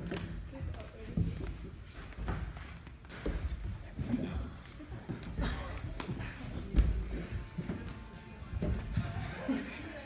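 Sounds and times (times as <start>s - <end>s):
climbing shoes knocking on holds: 5.0s - 9.3s.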